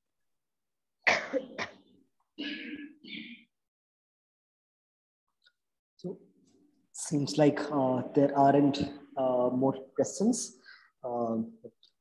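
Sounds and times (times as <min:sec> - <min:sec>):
woman coughing: 0:01.0 - 0:01.8, 0:02.4 - 0:03.5.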